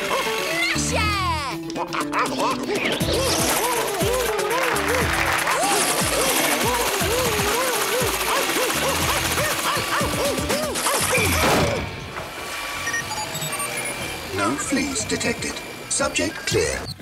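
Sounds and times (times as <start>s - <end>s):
cartoon comedy music: 0.0s - 12.0s
short electronic beeps: 12.8s - 15.3s.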